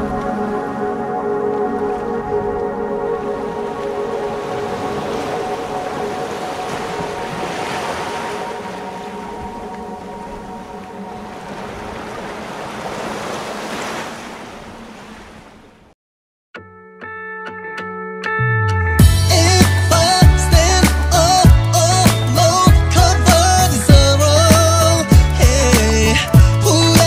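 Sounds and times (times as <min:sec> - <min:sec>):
ocean waves washing in: 0:00.0 - 0:15.9
pop song chord: 0:18.8 - 0:27.0.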